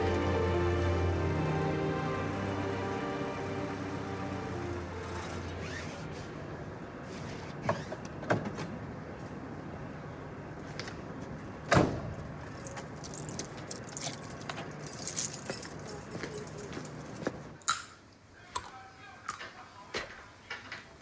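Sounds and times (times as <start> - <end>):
keys jingling: 12.5 - 17.3.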